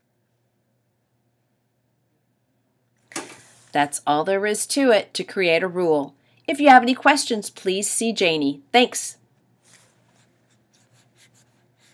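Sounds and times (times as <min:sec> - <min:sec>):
soft rustles: 0:09.5 - 0:11.9.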